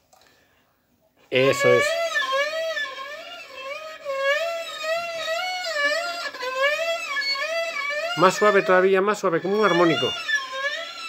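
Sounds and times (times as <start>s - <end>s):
bowed violin note with vibrato: 1.4s - 11.0s.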